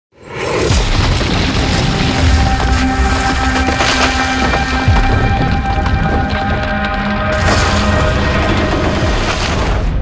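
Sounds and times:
music: 0.6 - 10.0
deep rumbling boom: 0.7 - 10.0.

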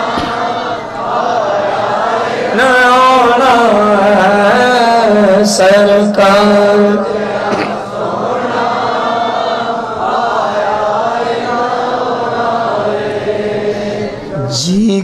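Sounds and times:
crowd of men chanting: 0.0 - 14.6
amplified male voice singing: 2.5 - 7.8, 14.0 - 15.0.

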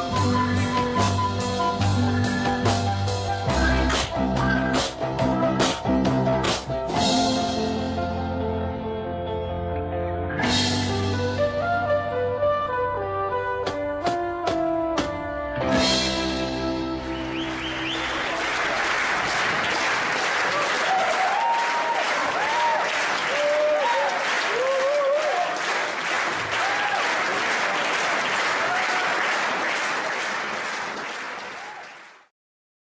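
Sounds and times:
audience applauding: 17.0 - 32.3.

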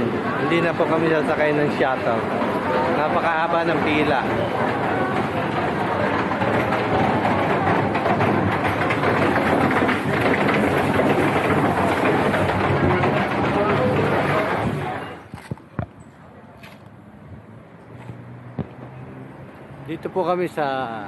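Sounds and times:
crowd chatter: 0.0 - 19.3
vans running: 0.0 - 21.0.

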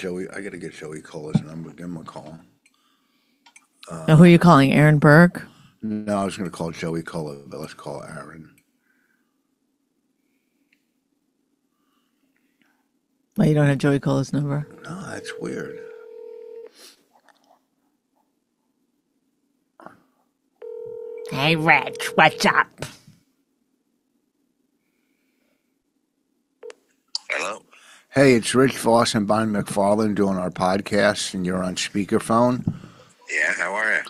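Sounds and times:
faint steady hum: 0.0 - 16.7, 17.3 - 34.0.

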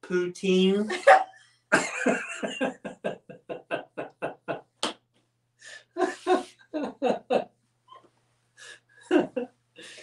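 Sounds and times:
woman laughing hard: 0.9 - 4.6, 6.0 - 7.5, 9.0 - 9.5
gasping in-breath: 9.8 - 10.0.

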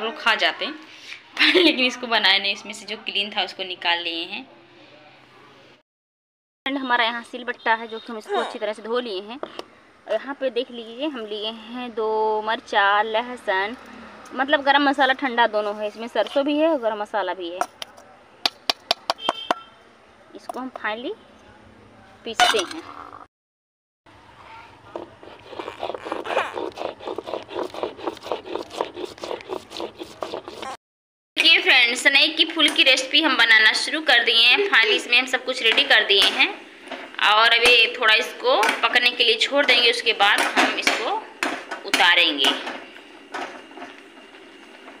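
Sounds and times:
stone scraping on stone: 24.9 - 30.8.

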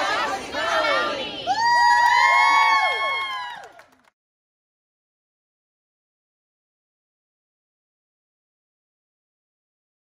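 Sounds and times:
people chanting: 0.0 - 1.6
crowd cheering and whooping: 1.4 - 4.0.

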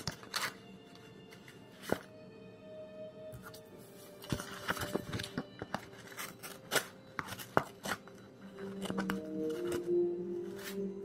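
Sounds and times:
blade slicing paper: 0.0 - 0.6, 4.7 - 9.9.

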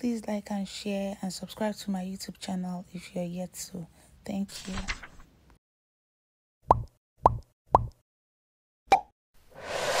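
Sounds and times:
whoosh: 9.5 - 10.0.

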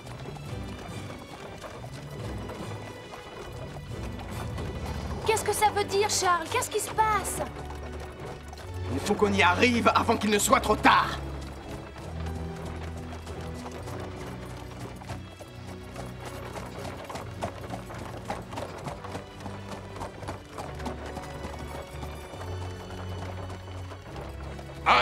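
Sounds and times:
background music with low notes: 0.0 - 25.0
horse hooves clip-clopping: 0.0 - 25.0.

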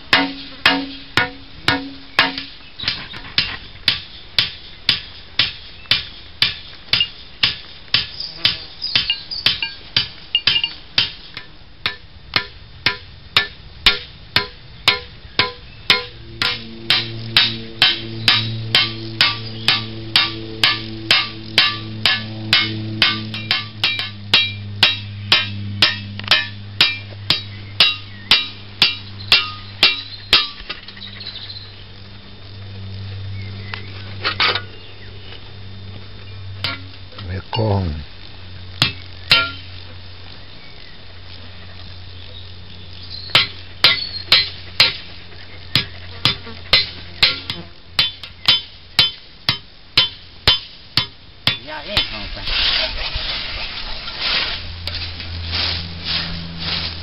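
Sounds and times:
steady low droning tone: 0.0 - 57.0
hammer striking blade on anvil: 0.1 - 2.5, 3.9 - 30.6, 36.6 - 36.9, 38.8 - 39.6, 43.4 - 45.0, 45.8 - 52.2.

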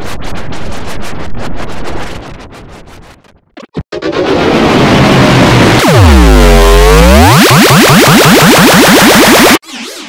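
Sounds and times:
tone plunging and gliding up: 4.3 - 9.6
distorted harsh logo jingle music: 4.4 - 10.0.

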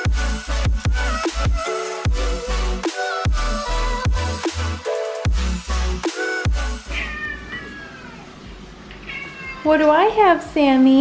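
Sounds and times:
cat meowing: 6.9 - 8.4, 9.0 - 10.0.

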